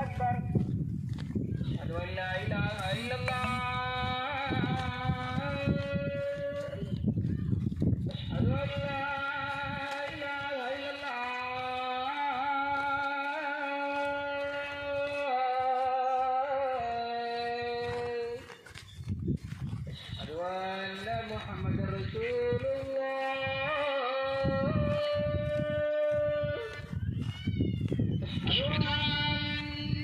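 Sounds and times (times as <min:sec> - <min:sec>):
man chanting call to prayer: 0:00.0 - 0:00.6, 0:01.7 - 0:07.0, 0:08.1 - 0:18.6, 0:20.2 - 0:26.9, 0:28.4 - 0:30.0
wind rumble on microphone: 0:00.0 - 0:30.0.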